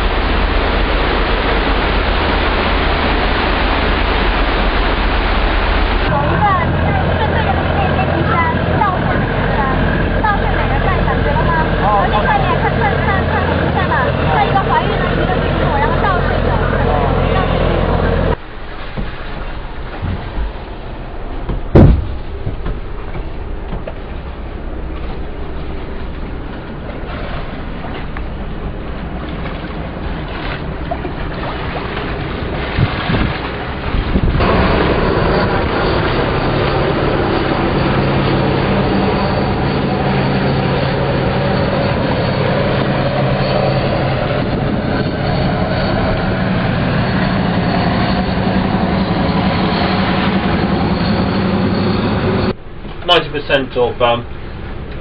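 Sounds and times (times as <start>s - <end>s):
boat engines droning: 0.0s - 55.0s
water rushing: 0.0s - 55.0s
sharp knock: 21.5s - 22.8s.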